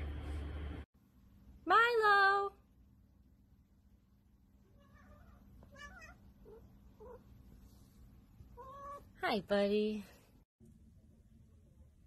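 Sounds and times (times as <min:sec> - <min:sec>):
cat meowing: 0:04.7 - 0:07.2, 0:08.6 - 0:09.1.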